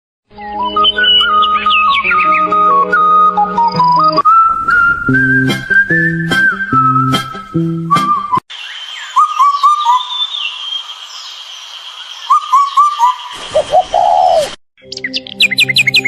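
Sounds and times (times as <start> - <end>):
music with chirpy high notes: 0.3 - 8.4
bird calling falling notes: 0.4 - 11.0, 12.2 - 16.0.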